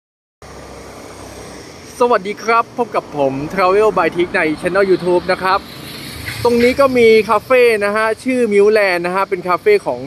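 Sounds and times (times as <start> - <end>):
road traffic passing: 0.4 - 10.0.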